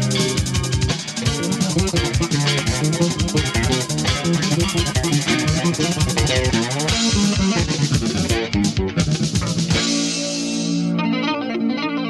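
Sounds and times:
electric bass guitar fast run: 0:00.0 - 0:10.1.

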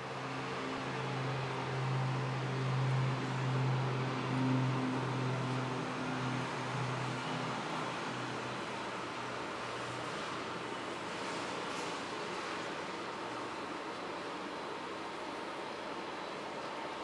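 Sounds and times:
propeller aircraft engine drone: 0:00.0 - 0:17.0.

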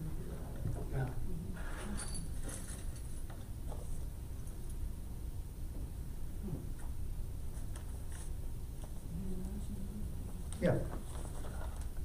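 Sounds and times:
steady low hum: 0:00.0 - 0:12.0
faint clicks and rustles: 0:06.8 - 0:12.0.

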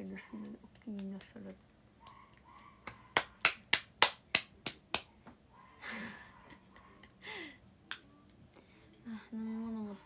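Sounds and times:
sharp hand smacks: 0:02.0 - 0:05.1.

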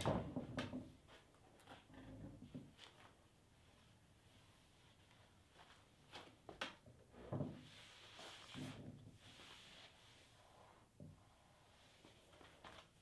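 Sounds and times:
hand brushing across tabletop: 0:07.6 - 0:12.3.

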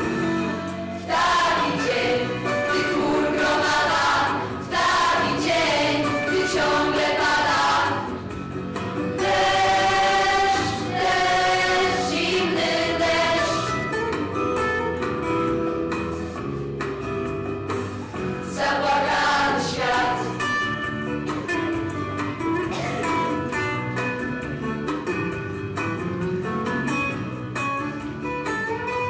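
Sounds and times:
youth choir singing: 0:01.0 - 0:08.2, 0:09.1 - 0:13.8, 0:18.4 - 0:20.4.

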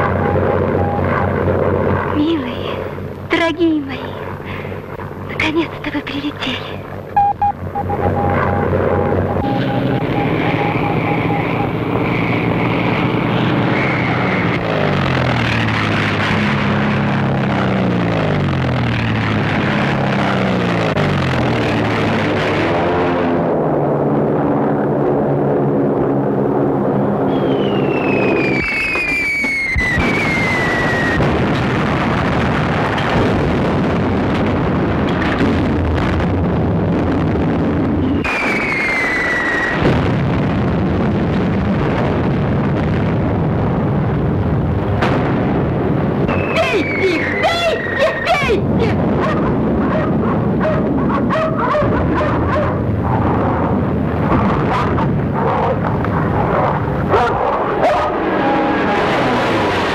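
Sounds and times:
aircraft engines droning: 0:00.0 - 0:29.4
falling bomb whistle: 0:07.2 - 0:11.9, 0:27.3 - 0:31.2, 0:38.0 - 0:39.8, 0:46.3 - 0:48.0.

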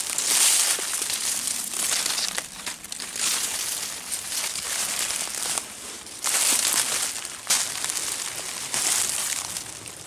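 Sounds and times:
footsteps crunching dry leaves: 0:00.0 - 0:10.0.

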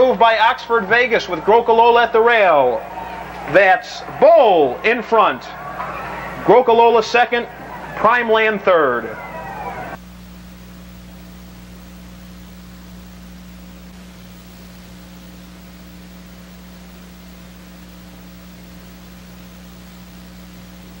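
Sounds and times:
low electrical hum: 0:00.0 - 0:21.0
tape hiss: 0:00.0 - 0:21.0.

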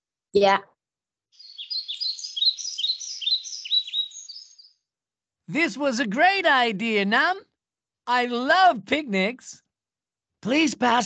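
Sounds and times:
high downward-sliding bird chirps: 0:01.3 - 0:04.9.

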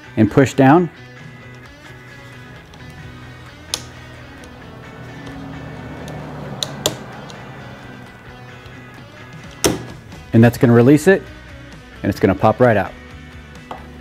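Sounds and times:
background music: 0:00.0 - 0:14.0.

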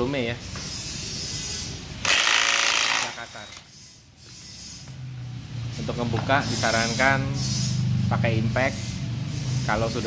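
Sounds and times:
impact wrench hammering: 0:02.0 - 0:03.2.

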